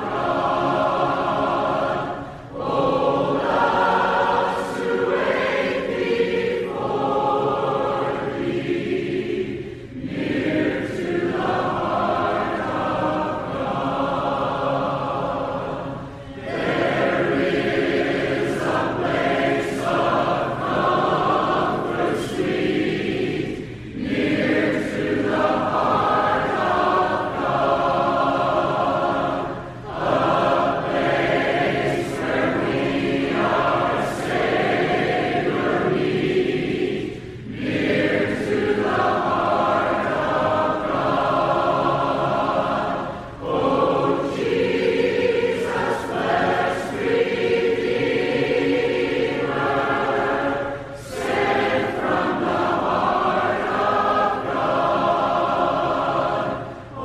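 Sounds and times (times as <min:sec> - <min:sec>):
choir singing religious song: 0:00.0 - 0:57.0.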